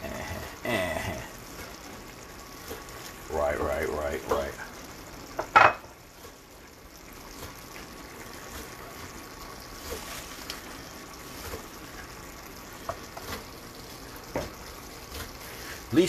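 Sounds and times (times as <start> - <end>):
sauce simmering in skillet: 0.0 - 16.0.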